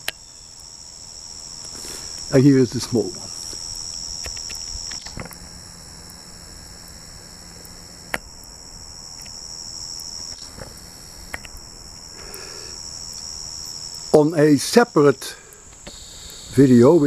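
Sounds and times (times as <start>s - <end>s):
insects chirping: 0.0s - 17.0s
sharp clicks: 3.5s - 8.6s, 9.2s - 9.4s, 10.0s - 12.5s, 15.5s - 16.5s.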